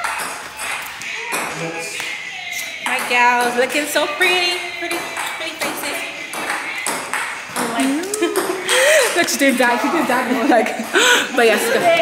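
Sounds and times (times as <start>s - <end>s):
gliding sung-out voice: 0.8s - 10.6s.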